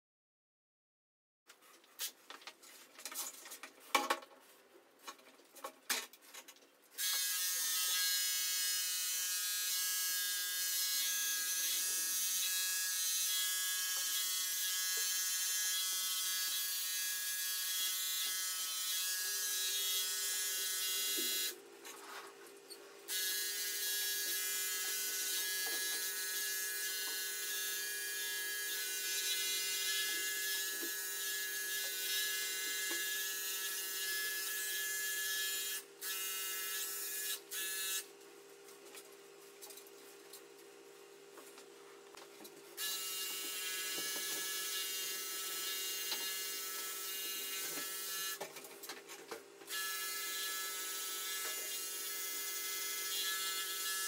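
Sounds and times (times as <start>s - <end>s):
electric pet clipper buzzing: 7.0s - 21.6s, 23.1s - 38.1s, 42.8s - 48.7s, 49.7s - 54.0s.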